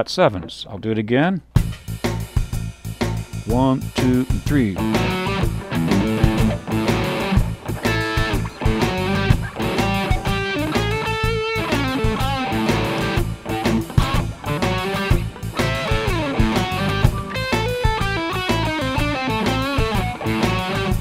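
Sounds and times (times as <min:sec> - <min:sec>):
bass and drums shuffle groove: 0:01.6 - 0:21.0
electric guitar funk-blues riff: 0:03.5 - 0:21.0.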